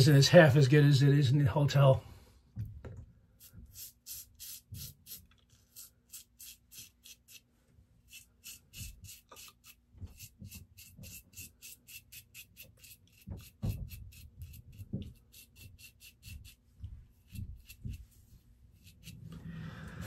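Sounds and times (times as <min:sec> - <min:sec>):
razor scraping through stubble: 0:03.4 - 0:07.5, 0:08.1 - 0:19.4.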